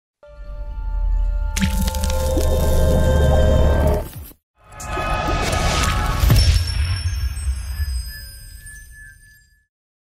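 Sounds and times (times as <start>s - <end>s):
splattering sound effect: 1.6s - 3.1s.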